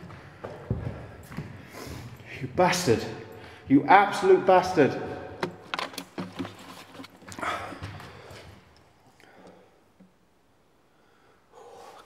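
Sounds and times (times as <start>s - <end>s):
breath: 0.1s - 2.4s, 3.3s - 3.7s, 7.4s - 9.8s, 10.9s - 12.0s.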